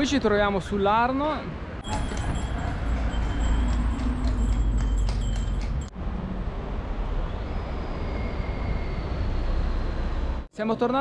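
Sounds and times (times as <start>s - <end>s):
traffic rumble: 0.0s - 10.7s.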